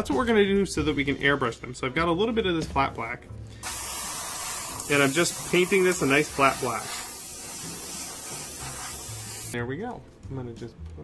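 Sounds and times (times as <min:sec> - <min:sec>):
airbrush spraying hiss: 0:03.6 - 0:09.6.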